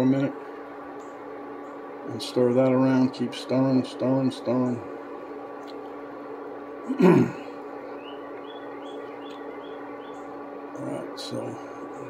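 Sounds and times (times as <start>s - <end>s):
hot plate hum: 0.0s - 12.0s.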